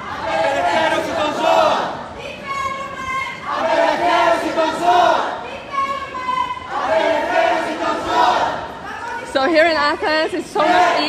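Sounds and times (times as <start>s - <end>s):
crowd chanting in unison: 0.0s - 2.2s, 3.3s - 5.6s, 6.2s - 8.8s, 10.5s - 11.0s.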